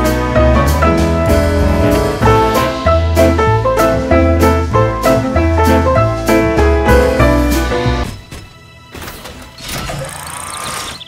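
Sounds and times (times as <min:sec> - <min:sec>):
background music: 0:00.0 - 0:11.0
cartoon robot machinery effect: 0:09.6 - 0:11.0.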